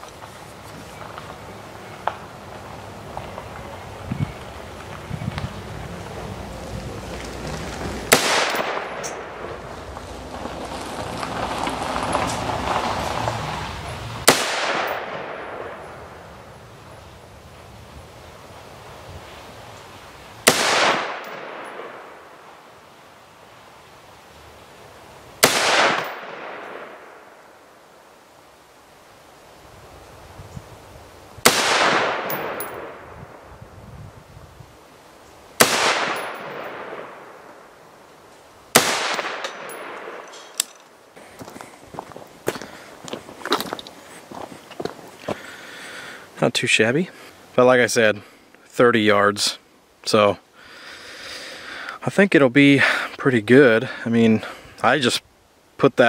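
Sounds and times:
rifle shots echoing: 8.1 - 9.5, 14.2 - 16.2, 20.4 - 22.4, 25.4 - 27.4, 31.4 - 33.4, 35.6 - 37.7, 38.7 - 40.5.

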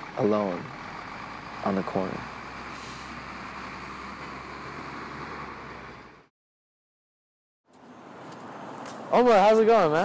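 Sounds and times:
city street traffic: 0.0 - 6.3, 7.6 - 10.0
brief hiss: 2.7 - 3.2.

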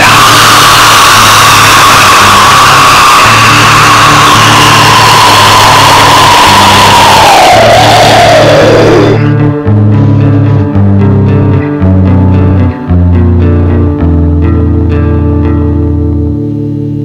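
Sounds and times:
distorted extreme metal music: 0.0 - 10.5.

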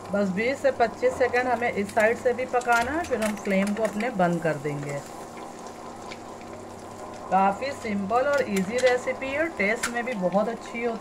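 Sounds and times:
butter sizzling in a pan: 0.0 - 11.0
low steady hum: 0.0 - 11.0.

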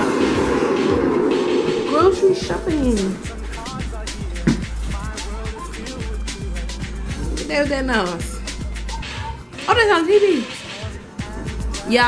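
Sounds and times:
rattling rumble from television: 0.0 - 12.0.

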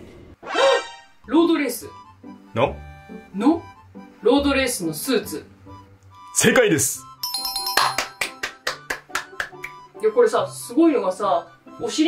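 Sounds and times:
bright chime jingle: 7.2 - 8.5.

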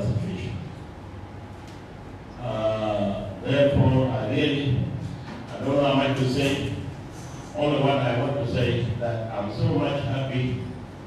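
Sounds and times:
man speaking: 0.0 - 0.7, 2.4 - 6.9, 7.5 - 10.8.

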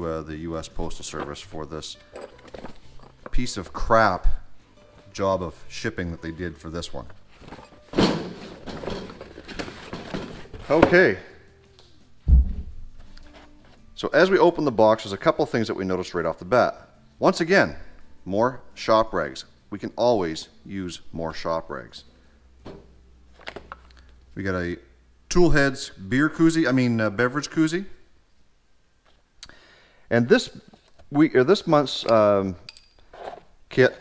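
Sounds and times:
cardboard rustling and scraping: 7.3 - 11.0
box set down on metal cart: 7.4 - 11.2.

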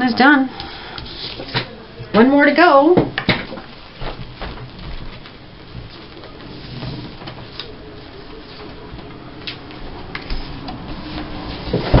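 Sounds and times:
paper rustling: 3.9 - 12.0.

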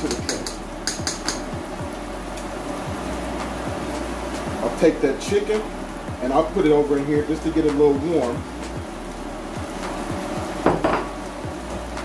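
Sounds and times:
vegetables and chicken sizzling: 0.0 - 12.0.

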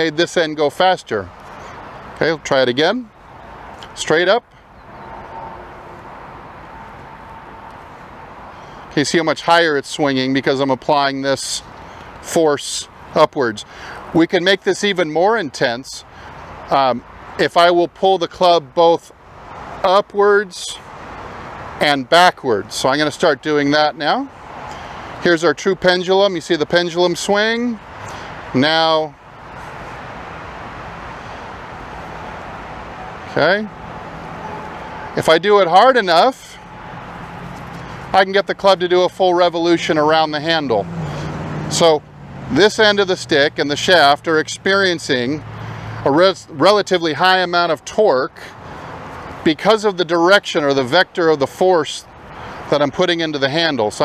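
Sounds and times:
outdoor background hiss: 0.0 - 54.0.

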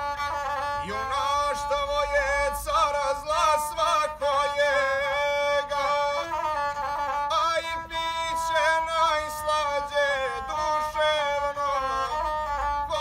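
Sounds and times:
bowed single-string fiddle: 0.0 - 13.0
man singing: 0.7 - 13.0.

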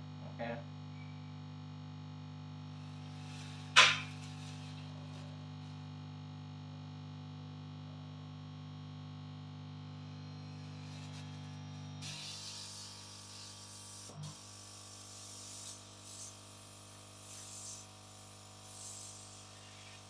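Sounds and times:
air blower humming: 3.0 - 5.1
air hissing from nozzle: 15.4 - 16.3, 17.2 - 17.9, 18.7 - 20.0.

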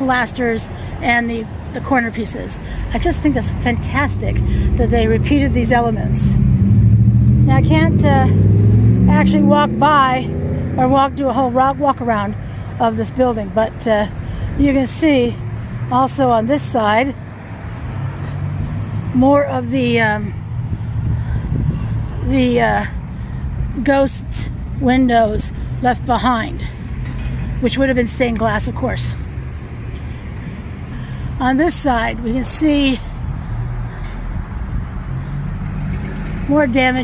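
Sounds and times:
motor vehicle rumble: 0.0 - 37.0
wind noise on microphone: 20.4 - 22.9.

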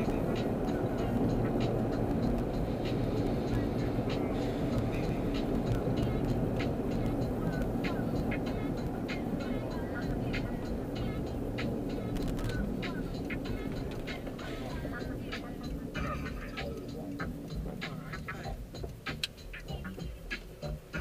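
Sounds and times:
car road and engine rumble: 0.0 - 21.0
car stereo music: 0.0 - 21.0.

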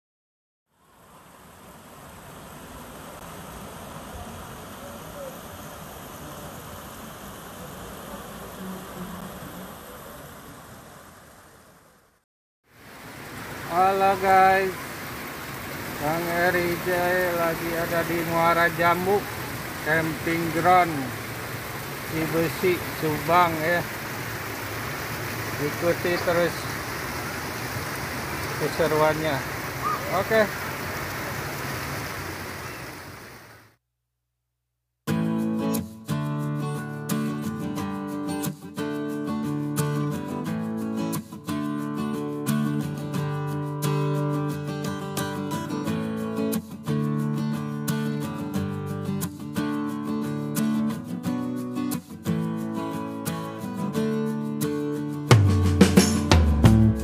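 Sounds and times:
stream rushing over rocks: 0.8 - 33.7.

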